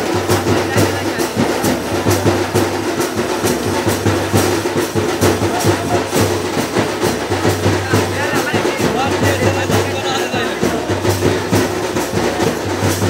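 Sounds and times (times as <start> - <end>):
drums beaten fast: 0.0 - 13.0.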